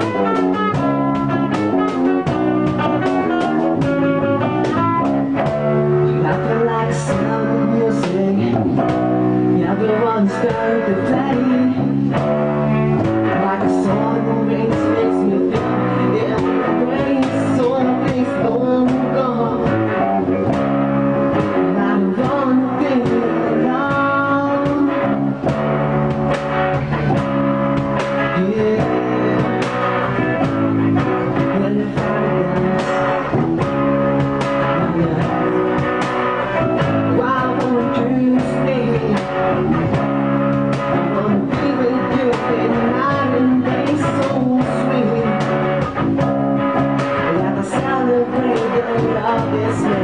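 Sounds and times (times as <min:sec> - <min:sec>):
man singing into microphone: 0:00.0 - 0:25.5, 0:28.2 - 0:40.2, 0:40.8 - 0:50.0
bass guitar: 0:00.0 - 0:50.0
cajon beat: 0:00.0 - 0:50.0
electric guitar: 0:00.0 - 0:50.0.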